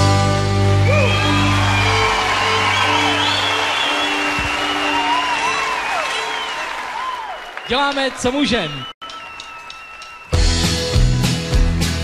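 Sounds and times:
audience applauding and cheering: 0.5 - 11.3.

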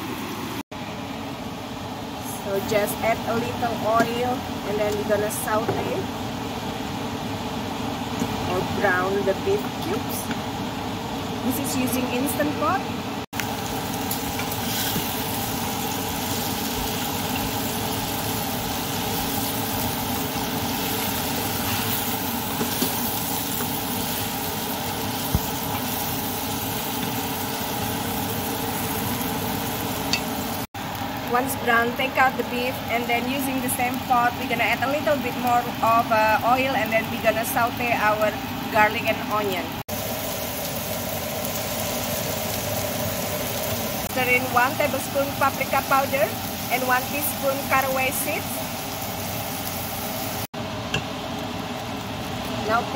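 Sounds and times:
steady mechanical hum: 0.0 - 52.9
meat sizzling in oil: 13.4 - 31.3, 32.0 - 52.9.

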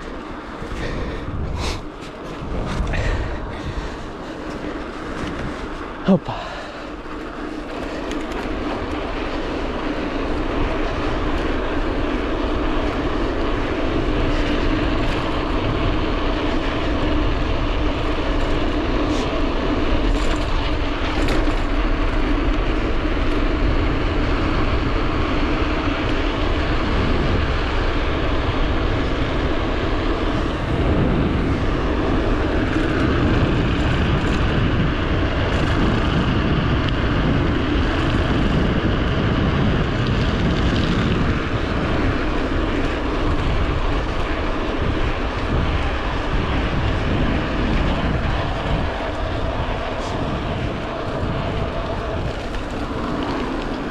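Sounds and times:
bike tyres rolling on asphalt: 0.0 - 53.9
wind rush on microphone: 0.0 - 53.9.

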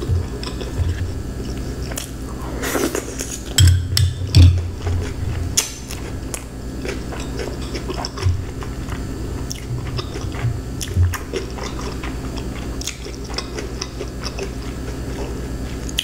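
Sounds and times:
chewing and biting food: 0.0 - 16.0.

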